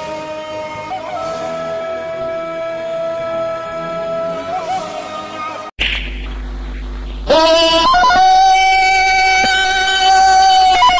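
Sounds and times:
man yodelling jungle call: 0.0 - 5.6, 7.3 - 10.9.

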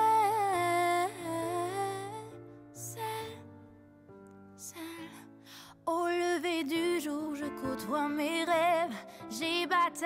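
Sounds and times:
woman singing without words: 0.0 - 3.6, 5.8 - 10.0
soft ballad backing music: 0.0 - 10.0.

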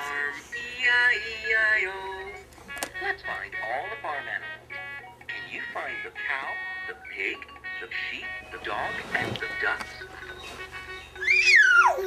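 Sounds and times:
steady electronic toy tone: 10.3 - 12.0
baby squealing: 11.2 - 12.0.

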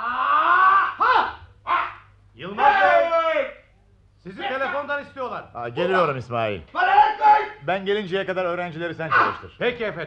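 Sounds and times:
people shouting karate cries: 0.0 - 3.6, 6.7 - 7.6, 9.1 - 9.4.

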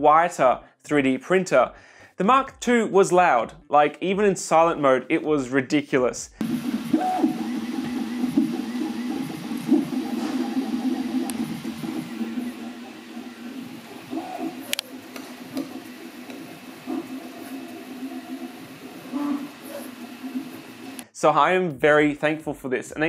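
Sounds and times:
printer stepper motors whining: 6.4 - 21.0
quieter printer printing: 6.4 - 21.0.

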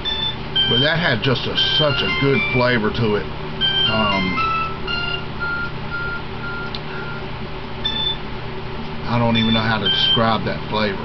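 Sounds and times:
phone ringtone beeps: 0.0 - 2.8, 3.6 - 7.2, 7.8 - 8.2, 9.3 - 10.2
steady low hum: 0.0 - 11.0.

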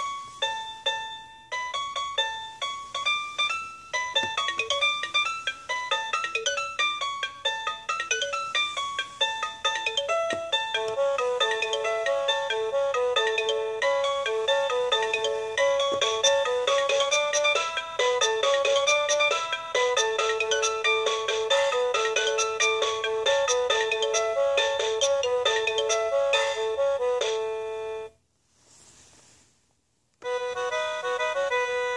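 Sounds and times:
toy playing synthesized tune: 0.0 - 28.2, 30.2 - 31.9.

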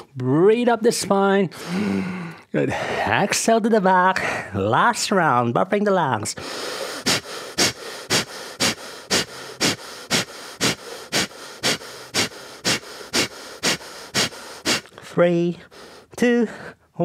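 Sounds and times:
man puffing breaths: 1.6 - 3.1, 6.4 - 16.8.

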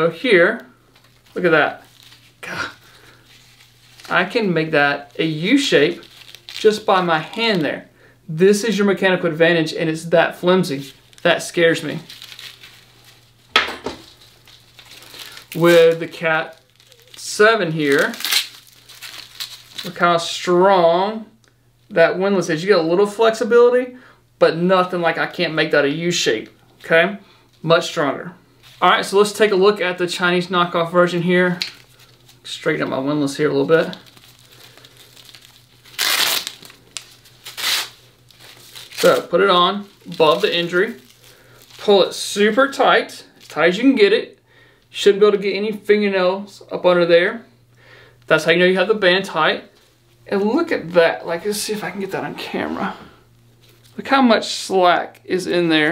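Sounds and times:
strap rustling: 0.8 - 7.7, 10.4 - 20.1, 28.6 - 43.7
hook-and-loop strap ripping open: 17.9 - 20.0, 33.9 - 39.3.

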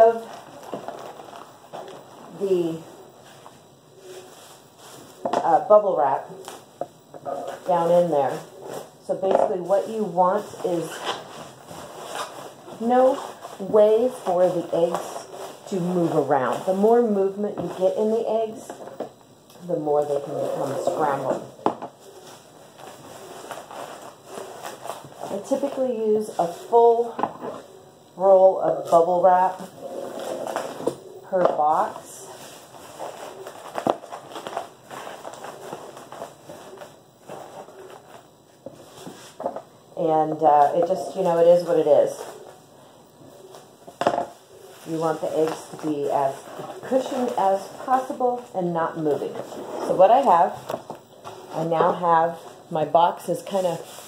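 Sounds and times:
bubble wrap and cardboard rustling: 0.0 - 6.8, 7.4 - 18.9, 20.0 - 54.0.

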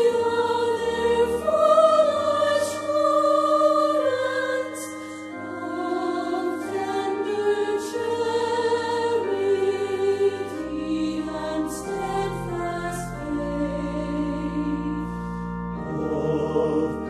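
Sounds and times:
choir singing sustained chords: 0.0 - 17.0.

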